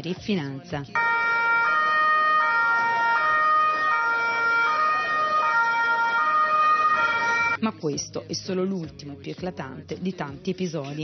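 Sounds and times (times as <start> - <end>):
two-tone police siren: 1.0 - 7.6.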